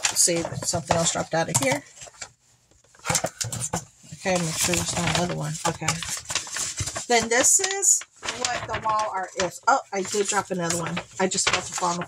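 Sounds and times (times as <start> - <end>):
paper and packaging rustling: 0.0 - 12.0.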